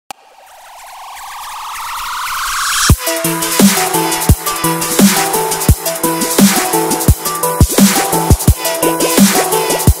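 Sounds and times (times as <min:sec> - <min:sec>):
rising pulsing synth tone: 0:00.1 - 0:05.7.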